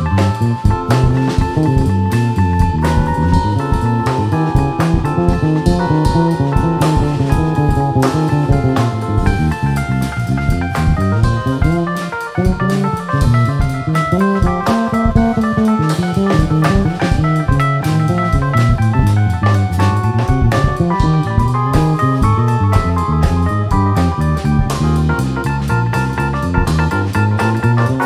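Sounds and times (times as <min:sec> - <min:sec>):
electric bass line: 0:00.0 - 0:28.0
keyboard notes: 0:00.0 - 0:28.0.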